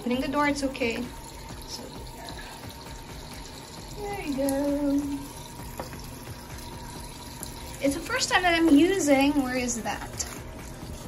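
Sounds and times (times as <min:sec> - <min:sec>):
water pouring and splashing: 0:00.0 - 0:11.0.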